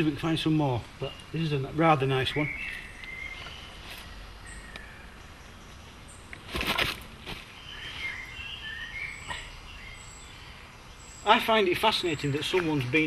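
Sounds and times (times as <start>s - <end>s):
small birds chirping: 0.0s - 13.0s
rustling crunch: 6.4s - 8.2s.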